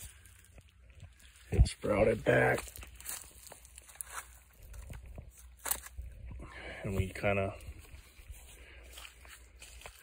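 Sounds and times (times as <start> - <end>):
footsteps crunching on dry grass: 0.0 - 10.0.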